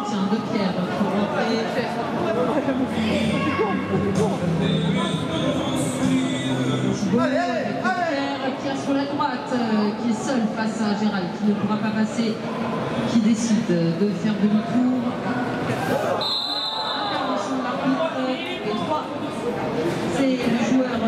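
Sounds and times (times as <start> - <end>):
voices talking in a hall: 0.0 - 21.0.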